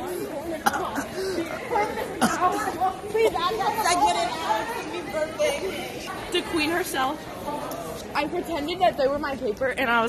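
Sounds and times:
young voices chatting: 0:00.0 - 0:10.0.

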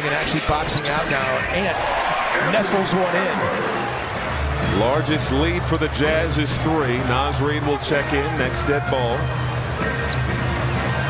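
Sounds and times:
crowd noise: 0:00.0 - 0:11.0
background music: 0:02.1 - 0:11.0.

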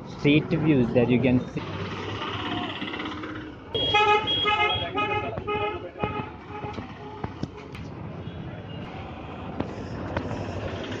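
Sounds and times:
low rumble of motor traffic: 0:00.0 - 0:11.0.

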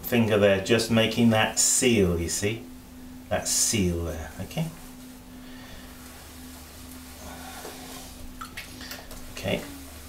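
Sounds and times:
potter's wheel humming: 0:00.0 - 0:10.0.

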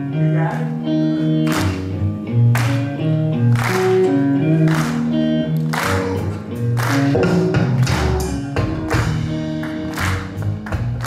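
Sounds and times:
blues-rock band playing: 0:00.0 - 0:11.0.

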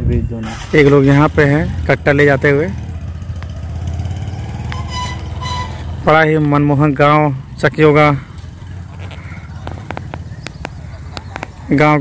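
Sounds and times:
tractor engine rumbling: 0:00.0 - 0:12.0.

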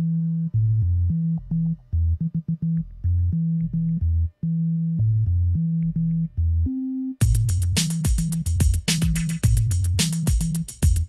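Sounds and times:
synthesizer bass riff: 0:00.0 - 0:11.0.

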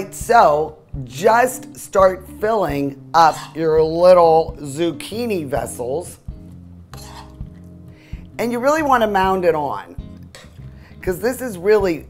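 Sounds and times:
soft background music: 0:00.0 - 0:12.0
spoon scraping and clicking: 0:03.2 - 0:03.6, 0:06.9 - 0:07.8, 0:10.1 - 0:10.8.

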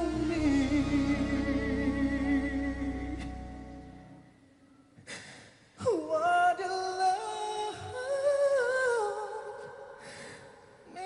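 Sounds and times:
man singing long high note: 0:00.0 - 0:04.0.

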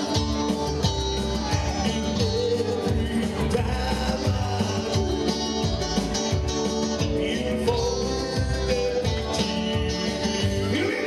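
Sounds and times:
electric guitars: 0:00.0 - 0:11.0
live pop band playing: 0:00.0 - 0:11.0
person singing: 0:00.0 - 0:11.0.

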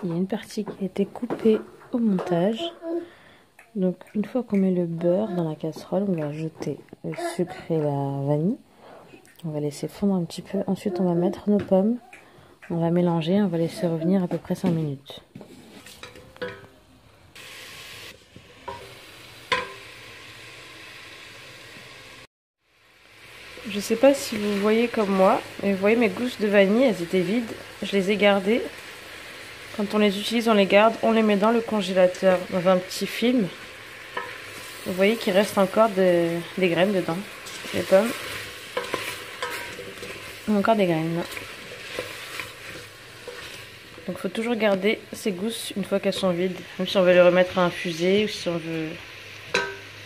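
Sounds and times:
apples sizzling in butter: 0:15.4 - 0:50.0
wooden spoon knocking on pan: 0:19.5 - 0:19.8, 0:49.5 - 0:49.8
spatula scraping pan: 0:33.9 - 0:44.8.

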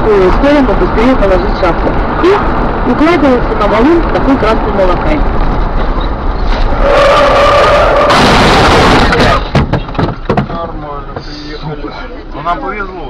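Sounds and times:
loud rushing noise: 0:00.0 - 0:09.8
car road noise: 0:00.0 - 0:13.0
tyre screech: 0:06.4 - 0:08.2
sharp knocks: 0:09.0 - 0:10.7.

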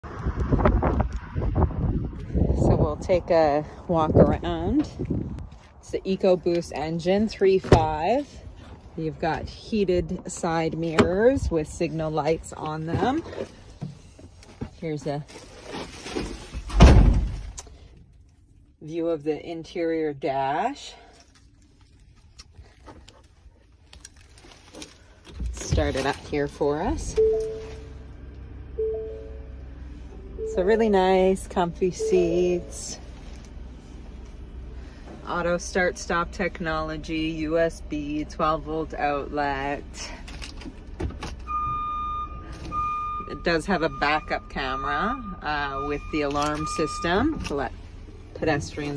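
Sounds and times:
low steady hum: 0:02.2 - 0:48.9
rustling movement: 0:04.9 - 0:18.7, 0:20.6 - 0:30.3, 0:30.9 - 0:35.6
reversing alarm beep: 0:27.1 - 0:27.9, 0:28.8 - 0:29.5, 0:30.3 - 0:30.8, 0:31.9 - 0:33.0, 0:41.5 - 0:47.5
two-note warning chime: 0:27.2 - 0:27.8, 0:28.8 - 0:29.4, 0:31.9 - 0:33.0, 0:41.5 - 0:47.4.

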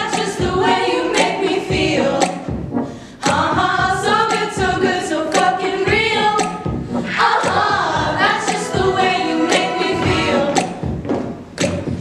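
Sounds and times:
female a cappella group singing: 0:00.0 - 0:02.6, 0:03.2 - 0:11.0
deep thumping beat: 0:00.0 - 0:12.0.

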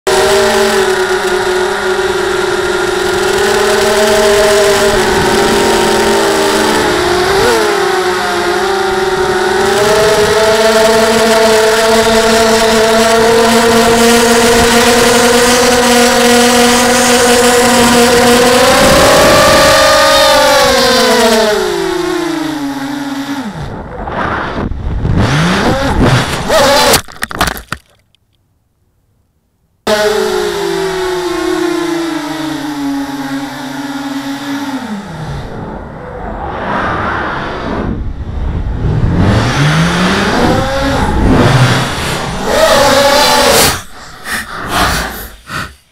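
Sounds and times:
drone motors whining: 0:00.1 - 0:27.0, 0:29.9 - 0:45.9.

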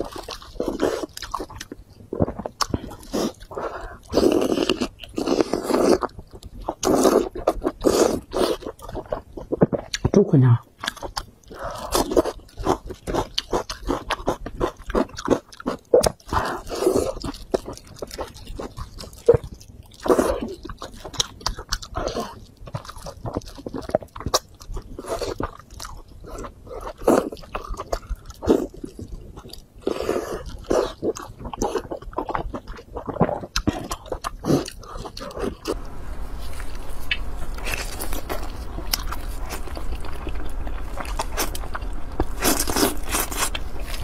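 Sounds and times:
chewing and biting meat: 0:00.0 - 0:10.1, 0:10.8 - 0:35.8, 0:36.4 - 0:44.0.

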